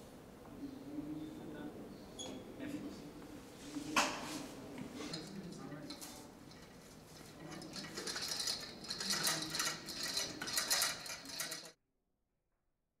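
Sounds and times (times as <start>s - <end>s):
hard objects clinking and clattering: 5.1s - 11.8s.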